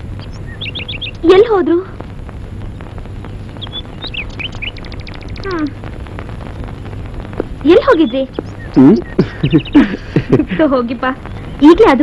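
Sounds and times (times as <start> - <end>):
bird ticking notes: 0.0 - 10.0
low steady hum: 0.0 - 12.0
small birds chirping: 0.0 - 12.0.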